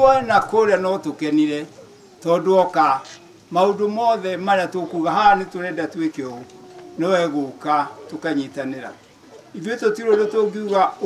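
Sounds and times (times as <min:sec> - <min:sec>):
man speaking into a microphone: 0:00.0 - 0:09.0, 0:09.6 - 0:11.0.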